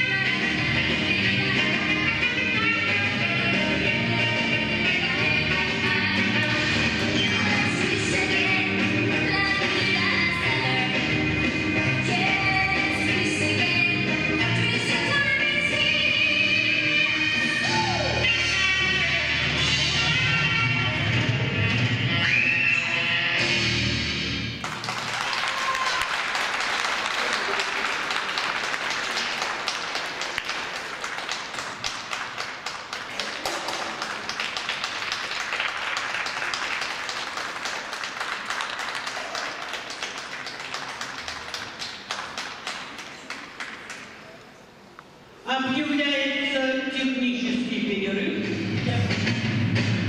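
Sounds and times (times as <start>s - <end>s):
figure skating program music: 0.0s - 25.0s, 48.2s - 50.0s
audience applause: 24.6s - 44.2s.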